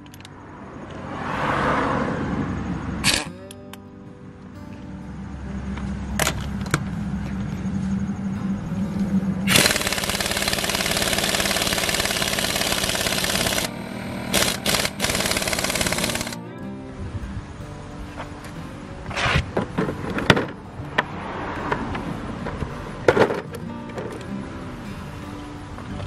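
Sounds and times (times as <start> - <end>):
steady hum: 2.6 - 19.0
air impact wrench rattling: 9.5 - 16.4.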